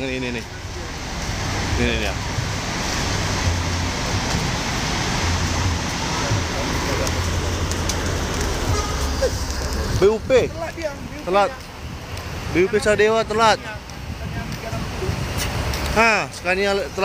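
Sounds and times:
diesel bus engine running: 0:00.0 - 0:17.0.

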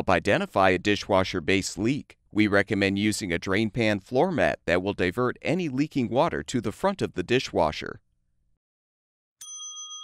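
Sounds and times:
bright bell-like chime: 0:09.4 - 0:10.0.

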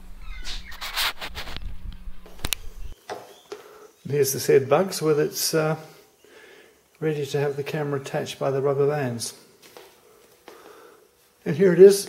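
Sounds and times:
camera handling rumble: 0:00.5 - 0:02.9
faint steady hum: 0:01.4 - 0:12.0.

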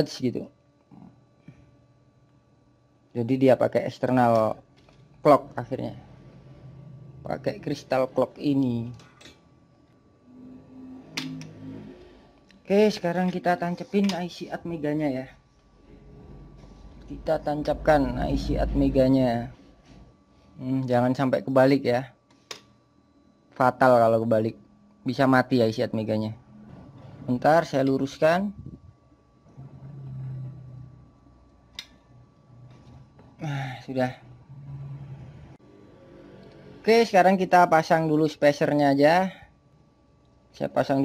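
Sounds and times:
faint low hum: 0:00.0 - 0:41.0.

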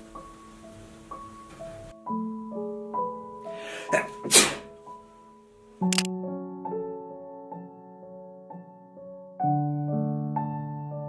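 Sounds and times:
soft piano music: 0:00.0 - 0:11.0
breathy intake: 0:03.5 - 0:04.7
person sneezing: 0:03.6 - 0:04.7.

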